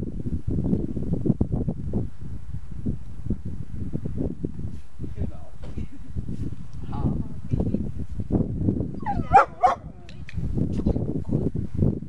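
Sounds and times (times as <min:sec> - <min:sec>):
dog barking: 0:09.1 - 0:10.0.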